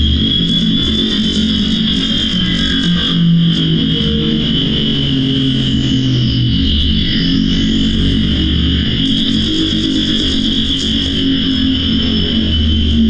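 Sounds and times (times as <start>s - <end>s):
distorted electronic noise drone: 0.0s - 13.0s.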